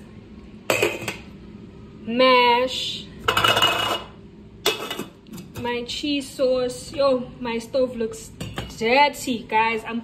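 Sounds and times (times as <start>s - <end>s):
pot lid clanking: 3.2s - 5.2s.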